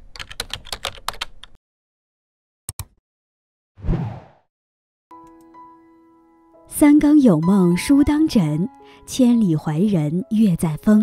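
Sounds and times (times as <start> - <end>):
computer keyboard typing: 0.1 - 1.6.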